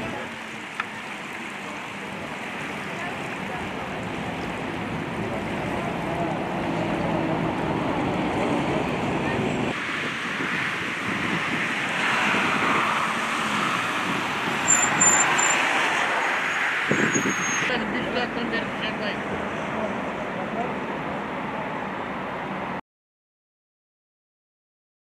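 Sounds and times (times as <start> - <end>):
water on rocky shore: 0.0 - 16.6
road traffic: 0.0 - 22.8
wind: 0.0 - 22.8
short high chirps: 14.7 - 15.6.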